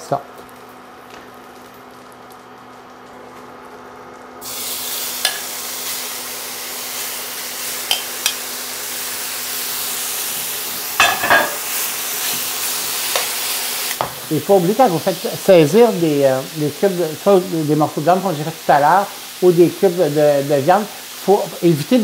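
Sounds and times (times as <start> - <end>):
meat sizzling in a pan: 0.9 - 22.0.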